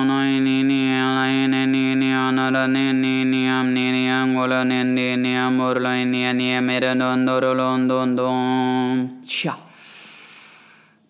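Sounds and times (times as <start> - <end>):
breathy exhale hiss: 9.7 - 11.0.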